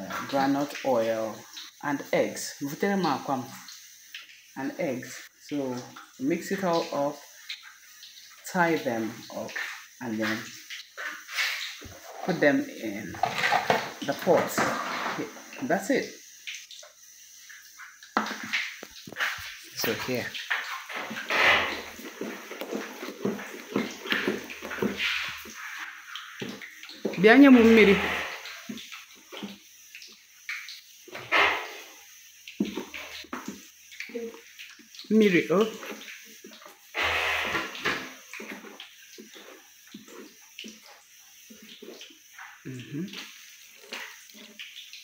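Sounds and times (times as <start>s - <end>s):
wooden spoon stirring thick batter: 18.2s - 28.0s, 37.8s - 42.2s.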